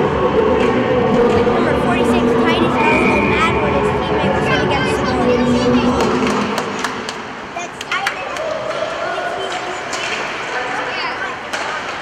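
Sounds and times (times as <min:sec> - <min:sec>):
spectators chatting: 0:00.0 - 0:12.0
hockey sticks clacking on puck: 0:06.0 - 0:12.0.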